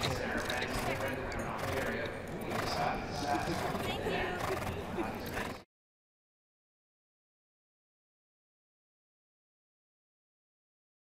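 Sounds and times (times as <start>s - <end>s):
group chatter: 0.0s - 5.6s
horse sounds: 0.0s - 5.6s.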